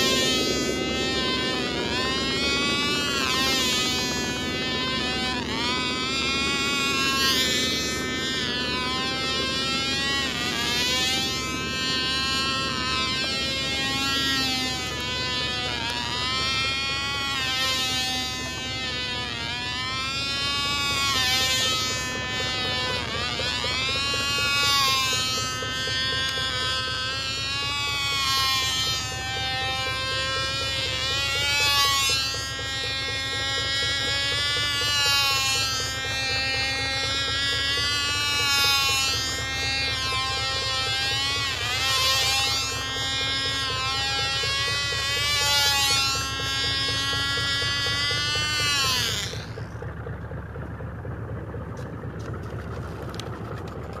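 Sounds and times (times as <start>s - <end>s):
model airplane engine buzzing: 0.0s - 54.0s.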